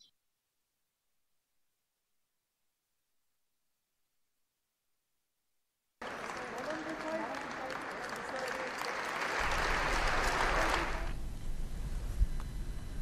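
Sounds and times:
voices: 6.0 - 11.1
audience applause: 6.0 - 11.2.

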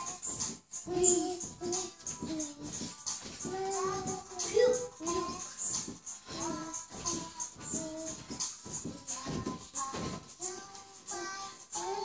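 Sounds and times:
child singing: 0.0 - 12.0
steady beat: 0.0 - 12.0.

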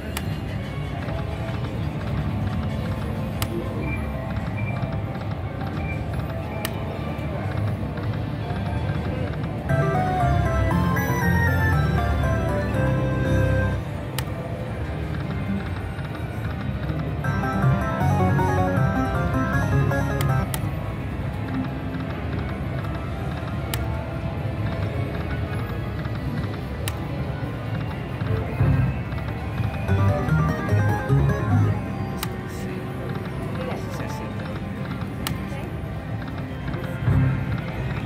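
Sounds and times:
casino background noise: 0.0 - 38.0
slot machine game music: 9.5 - 14.1, 17.1 - 21.4, 29.4 - 33.5.

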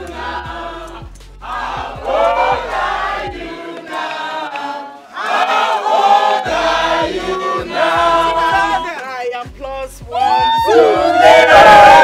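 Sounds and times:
crowd singing together: 0.0 - 8.9, 10.7 - 12.0.

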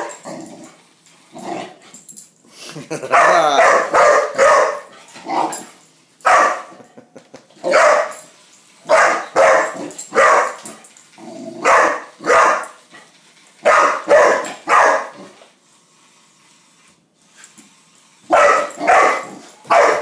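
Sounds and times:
young dog barking: 3.1 - 4.9, 6.3 - 6.7, 7.7 - 8.1, 8.9 - 10.6, 11.6 - 12.7, 13.6 - 15.2, 18.3 - 20.0.

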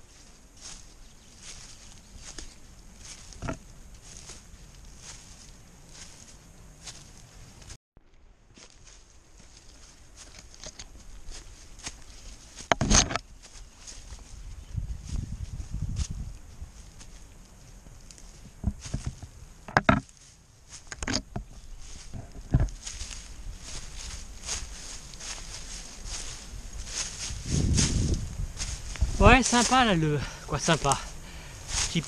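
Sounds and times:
footsteps on rocky leafy trail: 0.0 - 7.8, 8.5 - 32.0.

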